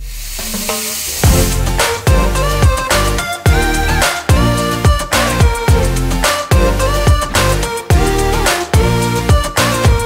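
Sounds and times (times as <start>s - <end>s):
background music with drums: 0.0s - 10.0s.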